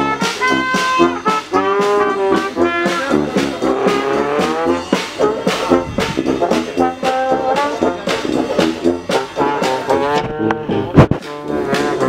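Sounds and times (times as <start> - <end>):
brass band playing: 0.0 - 12.0
tuba note sliding upward: 0.0 - 12.0.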